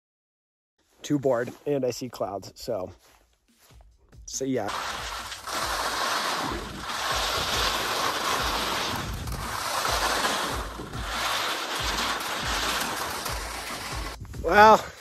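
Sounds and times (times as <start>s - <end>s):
skis hissing on snow: 4.4s - 15.0s.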